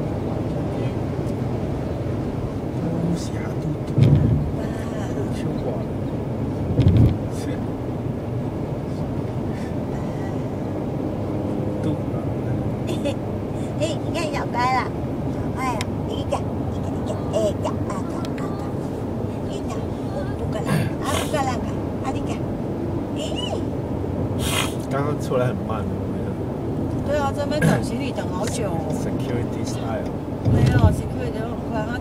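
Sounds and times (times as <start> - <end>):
car road and engine noise: 0.0 - 32.0
low thumps: 3.9 - 4.8, 6.6 - 7.3, 30.4 - 31.3.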